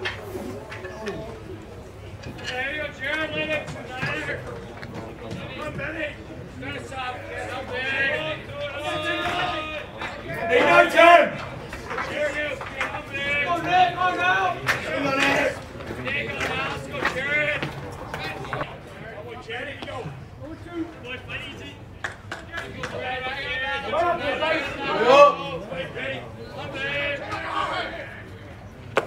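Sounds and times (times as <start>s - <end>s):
people talking and calling out: 0.0s - 29.0s.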